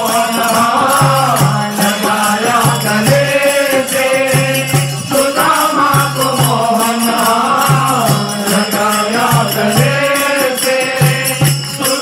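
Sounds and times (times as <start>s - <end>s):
hand cymbals: 0.0s - 12.0s
shaker: 0.0s - 12.0s
voices singing a chant: 0.0s - 12.0s.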